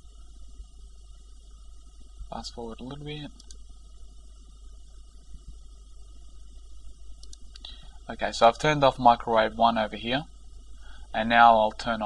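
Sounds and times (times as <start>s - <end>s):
faint hiss: 0.0s - 12.0s
steady low hum: 0.0s - 12.0s.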